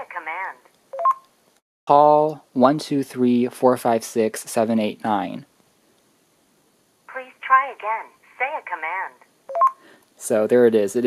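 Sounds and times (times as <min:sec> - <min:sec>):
phone voice prompt: 0:00.0 - 0:00.6.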